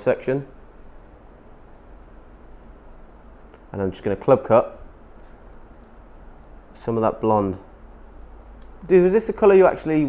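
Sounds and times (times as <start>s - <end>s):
low hum: 0.5s - 9.8s.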